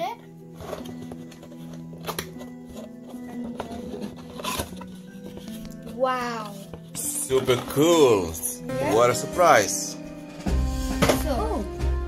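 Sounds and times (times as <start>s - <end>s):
background music with held notes: 0.0s - 12.0s
cardboard scraping or tearing: 0.6s - 8.1s
hands handling cardboard box: 0.6s - 8.4s.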